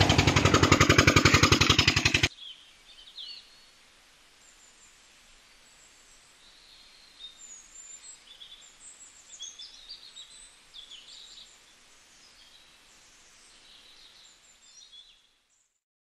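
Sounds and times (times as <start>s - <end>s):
birds chirping: 0.0s - 3.6s
open-air hiss: 0.0s - 15.8s.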